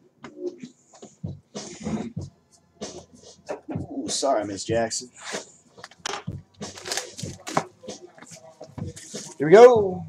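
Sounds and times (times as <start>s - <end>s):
shrink-wrapped boxes crackling: 6.7s - 7.6s.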